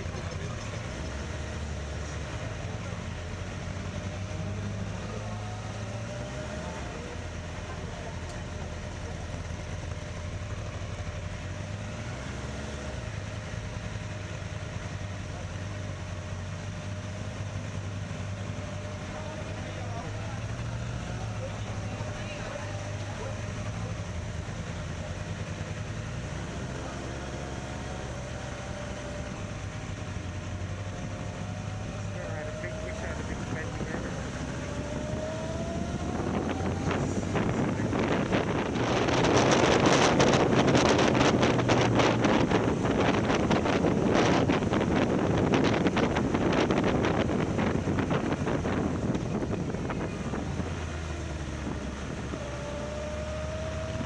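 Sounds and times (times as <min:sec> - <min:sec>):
people talking: 0:00.0 - 0:03.5, 0:04.1 - 0:10.0, 0:18.6 - 0:25.3, 0:31.1 - 0:39.3
motorcycle engine running: 0:00.0 - 0:54.0.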